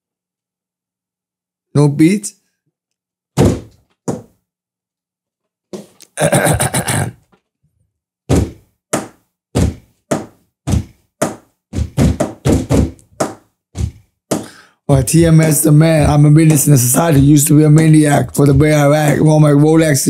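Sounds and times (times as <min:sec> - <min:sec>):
hand thumping on a tabletop: 0:08.3 - 0:14.5.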